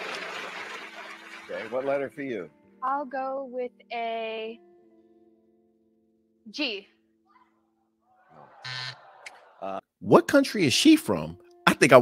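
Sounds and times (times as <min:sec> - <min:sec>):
game show buzzer: 0:08.6 - 0:09.1.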